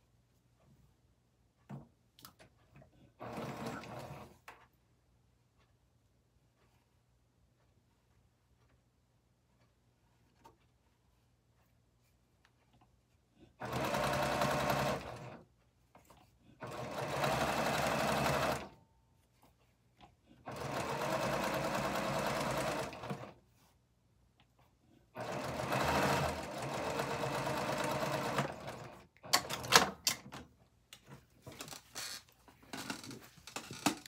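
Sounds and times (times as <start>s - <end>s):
sewing machine stitching: 2.7s - 4.5s, 13.5s - 18.8s, 20.4s - 23.4s, 25.1s - 30.1s.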